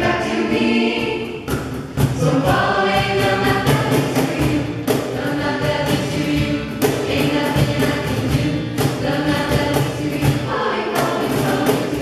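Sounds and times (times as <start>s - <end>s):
choir singing jazz: 0.0s - 12.0s
sharp percussive hit: 1.2s - 5.3s.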